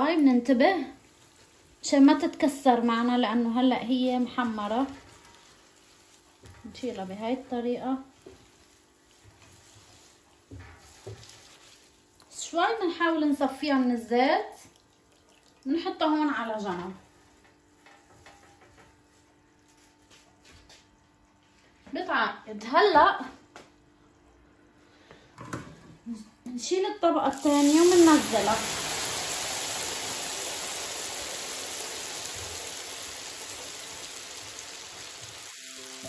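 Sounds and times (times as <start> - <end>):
oil sizzling in a frying pan: 0.0 - 13.7, 27.2 - 36.0.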